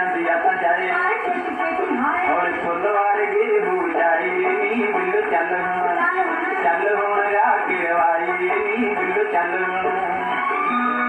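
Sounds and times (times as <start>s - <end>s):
instrumental accompaniment: 0.0s - 11.0s
person singing: 0.0s - 11.0s.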